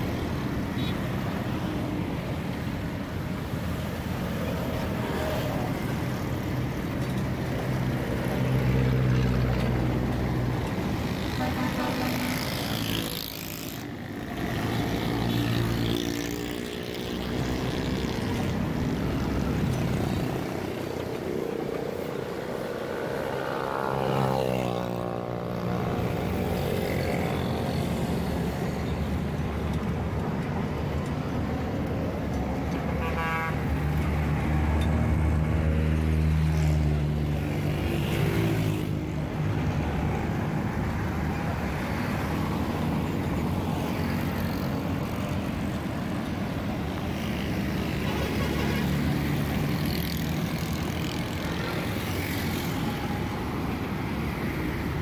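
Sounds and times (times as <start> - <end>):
vehicle engines passing: 0.0 - 55.0.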